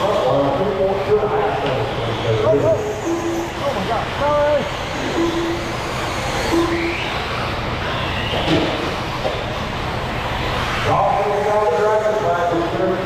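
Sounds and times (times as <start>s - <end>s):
voices: 0.0s - 5.4s, 10.8s - 13.0s
mechanical din of rc cars: 0.0s - 13.0s
rising motor whines: 1.2s - 13.0s.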